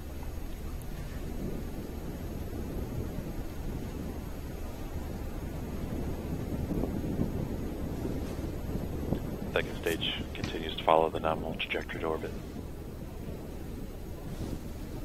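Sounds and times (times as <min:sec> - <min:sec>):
low rumbling background noise: 0:00.0 - 0:15.0.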